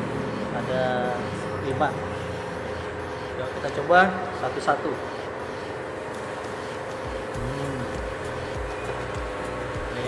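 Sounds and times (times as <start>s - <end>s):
restaurant dining room hum: 0.0s - 10.0s.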